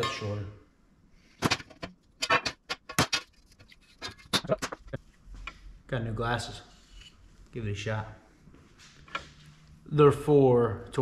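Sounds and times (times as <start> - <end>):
sheet metal clattering on steel table: 1.4 - 3.3.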